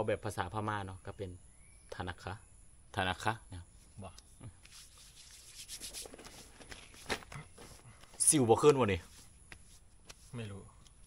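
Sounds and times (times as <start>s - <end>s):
palms rubbing on skin: 3.8s - 11.0s.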